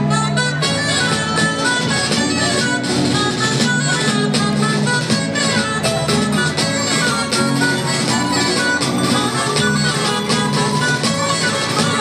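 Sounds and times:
plucked guitars and lutes: 0.0 - 12.0.

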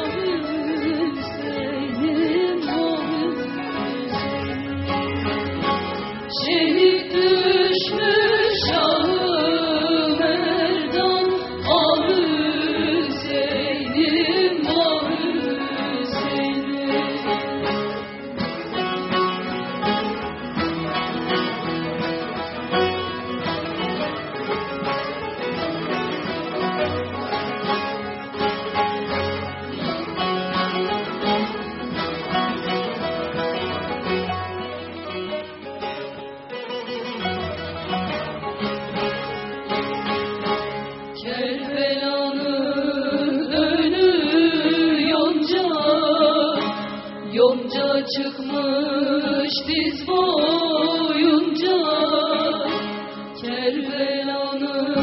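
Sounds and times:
person singing: 0.0 - 5.2, 6.3 - 17.7, 41.2 - 52.8
plucked lute ensemble: 0.0 - 55.0.

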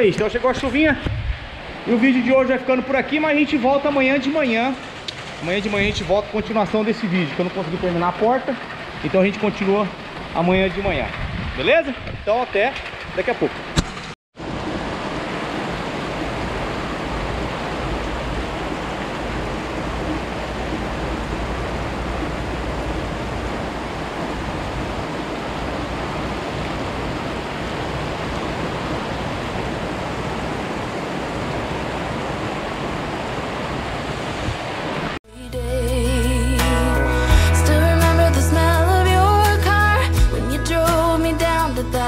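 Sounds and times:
heavy rain pouring: 0.0 - 35.2.

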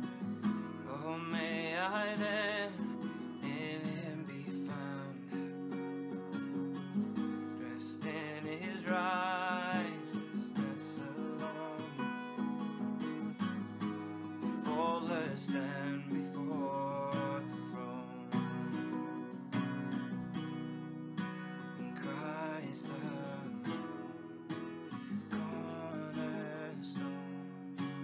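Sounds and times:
strummed acoustic guitar: 0.0 - 28.0
man singing: 0.8 - 5.6, 7.5 - 13.4, 14.3 - 18.8, 22.0 - 24.2, 25.0 - 28.0.

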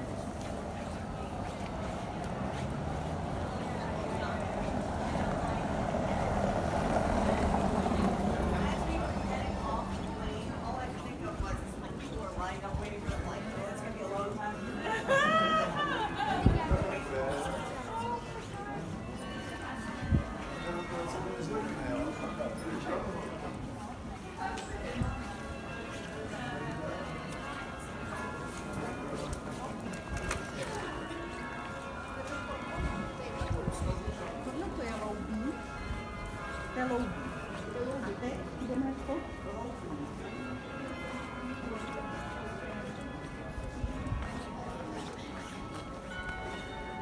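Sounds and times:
footsteps on stone paving: 0.0 - 5.9, 6.7 - 47.0
car tyres rumbling on cobblestones: 0.0 - 13.1
people talking: 0.0 - 47.0.

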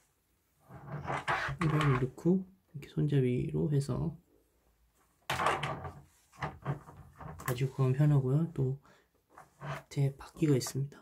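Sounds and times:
plastic basket knocking and scraping: 5.3 - 7.6.

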